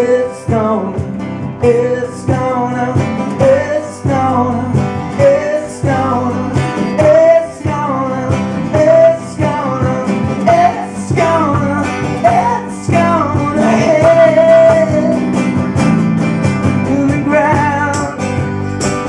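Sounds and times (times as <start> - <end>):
strummed acoustic guitars: 0.0 - 19.0
person singing: 1.6 - 15.4, 16.8 - 18.2.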